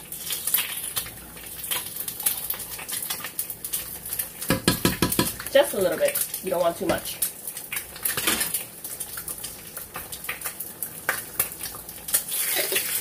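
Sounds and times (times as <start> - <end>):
frying sizzle: 0.0 - 13.0
metal spoon scraping a saucepan: 12.4 - 13.0.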